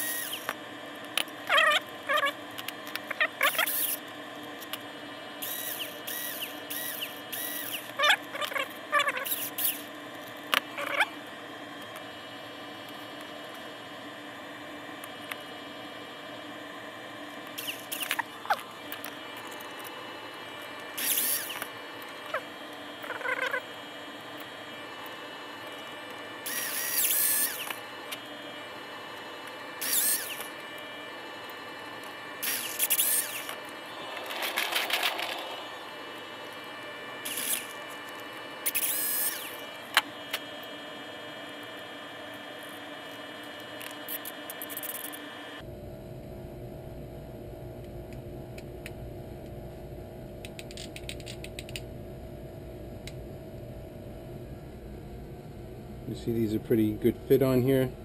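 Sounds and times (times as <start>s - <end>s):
electric drill whining: 0.0s - 0.6s, 5.4s - 8.6s, 21.0s - 23.2s, 25.6s - 28.6s, 29.8s - 30.9s, 32.4s - 36.0s, 37.2s - 37.9s, 38.6s - 40.0s.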